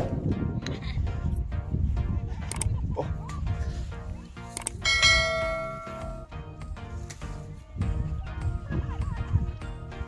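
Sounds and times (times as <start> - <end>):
background music: 0.0 - 10.0
bell chime notification: 4.8 - 6.3.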